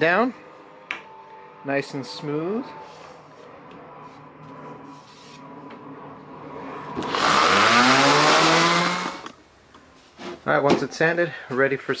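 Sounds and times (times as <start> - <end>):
electric sander motor whine: 0.0 - 9.4.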